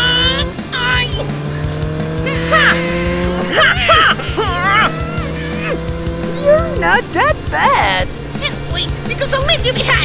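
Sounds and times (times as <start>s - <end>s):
cartoon engine revving: 0.0s - 6.9s
background music: 0.0s - 10.0s
tire screeches: 0.0s - 10.0s.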